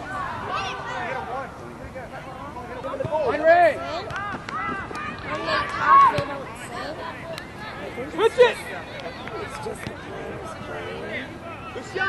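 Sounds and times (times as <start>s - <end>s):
voices shouting and calling out: 0.0s - 12.0s.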